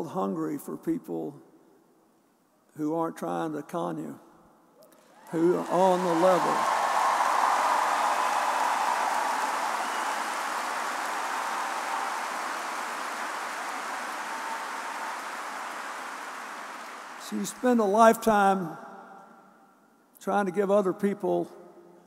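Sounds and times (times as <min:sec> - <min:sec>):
crowd applauding: 0:05.0 - 0:17.8.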